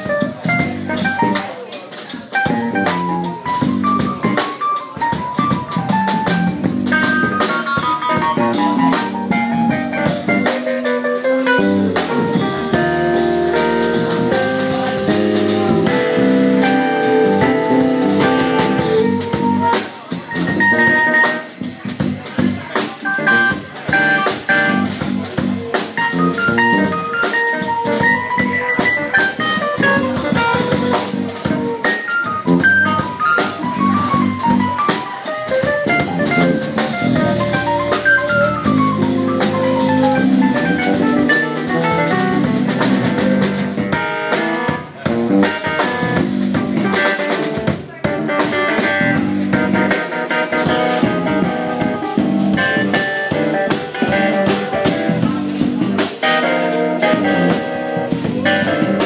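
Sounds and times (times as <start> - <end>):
busy bass line: 0.0 - 59.0
jazz-funk band playing: 0.0 - 59.0
keyboard note runs: 12.5 - 19.8.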